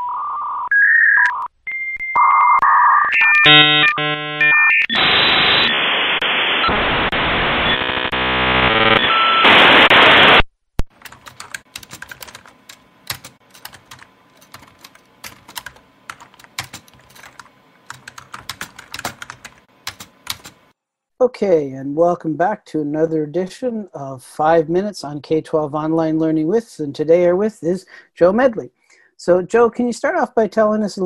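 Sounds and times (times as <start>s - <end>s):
dial-up modem screeching tones: 0.0s - 10.4s
typing on computer keyboard: 10.9s - 20.6s.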